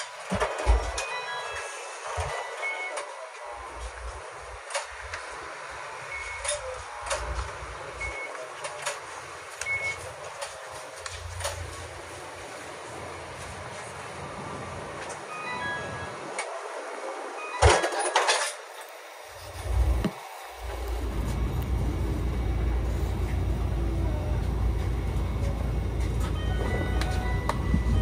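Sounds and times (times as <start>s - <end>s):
low rumbles: 19.5s - 26.4s.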